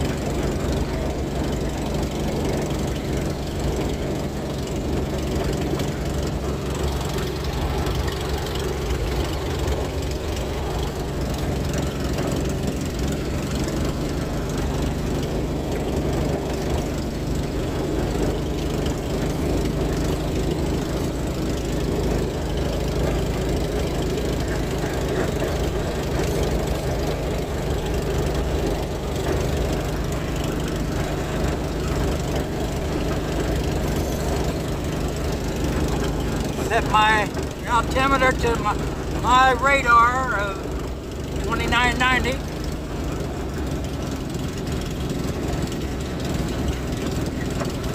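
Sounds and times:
light aircraft engine and propeller: 0:00.0 - 0:47.9.

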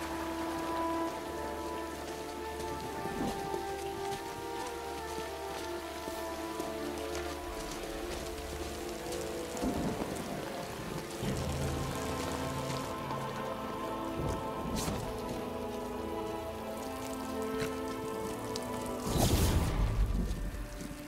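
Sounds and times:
heavy rain on street: 0:00.0 - 0:21.0
slow musical score: 0:00.0 - 0:21.0.

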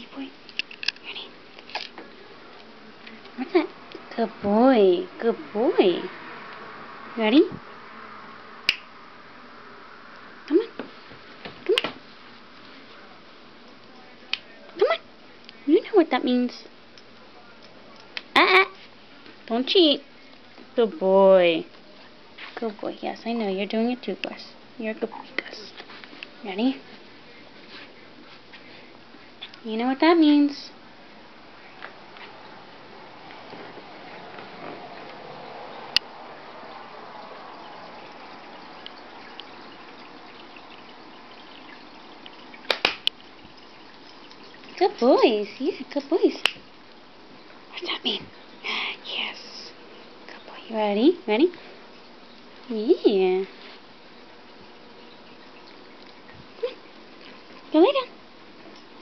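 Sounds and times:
finger snap: 0:08.7 - 0:08.9
water trickling from aquarium filter: 0:16.3 - 0:59.0
hand claps: 0:42.7 - 0:43.1.

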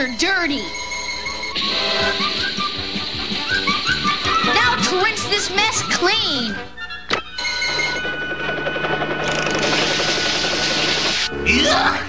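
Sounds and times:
rushing hiss of spraying water: 0:01.6 - 0:04.6.

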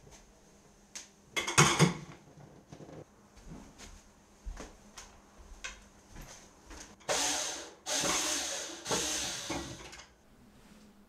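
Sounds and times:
power drill driving screws: 0:07.1 - 0:10.0.

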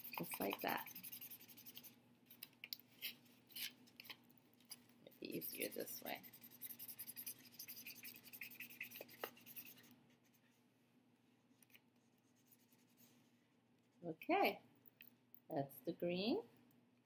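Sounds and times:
felt-tip marker scratching on paper: 0:00.0 - 0:01.9, 0:05.2 - 0:10.4.

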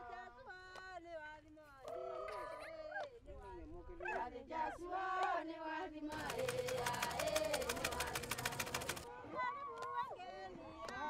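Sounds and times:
sewing machine stitching: 0:06.1 - 0:09.1.

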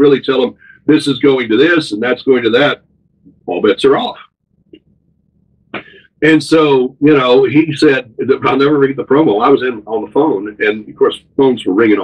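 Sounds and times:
man speaking: 0:00.0 - 0:02.8, 0:03.4 - 0:04.2, 0:05.8 - 0:12.0
breathy throat sound: 0:05.7 - 0:06.2.

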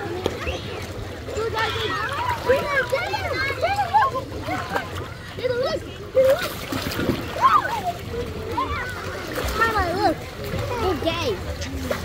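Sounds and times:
children and adults talking: 0:00.0 - 0:12.0
water splashing in pool: 0:00.0 - 0:12.0.

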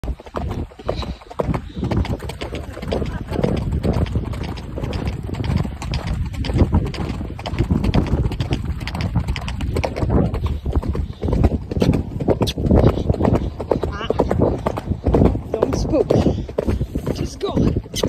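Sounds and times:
horse hooves on dirt: 0:00.0 - 0:18.0.

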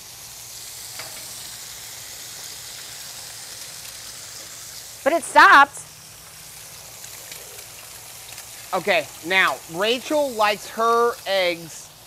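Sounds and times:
food sizzling on a griddle: 0:00.0 - 0:12.0
faint crackles: 0:00.8 - 0:12.0.

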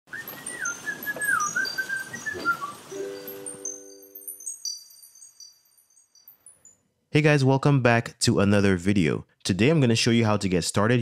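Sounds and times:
whistle-like jingle melody: 0:00.1 - 0:06.9
high chime tinkles: 0:00.2 - 0:07.0
held chord: 0:02.9 - 0:04.4.

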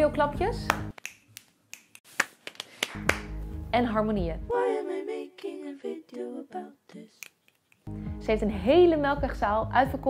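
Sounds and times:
finger snaps: 0:00.7 - 0:03.3.

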